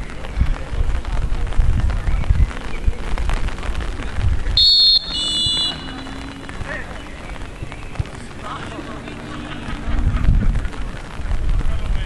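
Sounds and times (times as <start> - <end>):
wind rumbling on microphone: 0.0 - 12.0
referee's whistle blast: 4.6 - 6.2.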